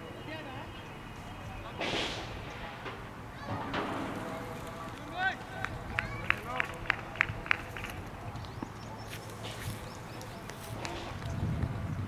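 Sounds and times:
short sharp claps: 0:05.6 - 0:08.7.

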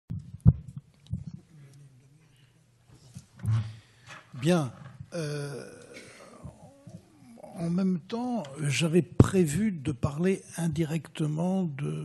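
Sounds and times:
microphone handling thumps: 0:00.1 - 0:01.4
low steady hum: 0:00.1 - 0:12.0.

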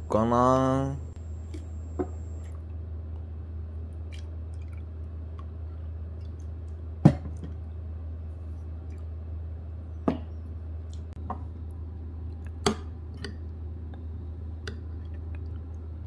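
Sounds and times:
steady low hum: 0:00.0 - 0:03.8.

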